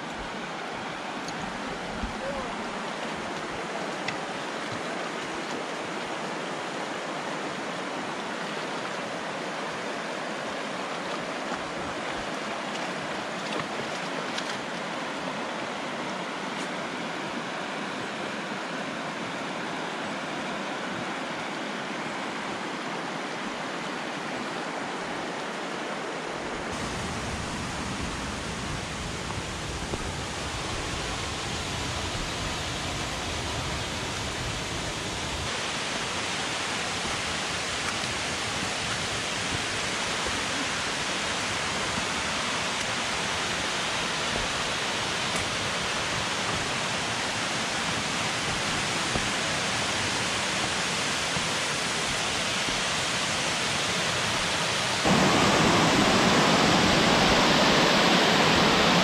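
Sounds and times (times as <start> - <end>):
river running over rapids: 0.0 - 59.0
waterfall rushing: 0.0 - 59.0.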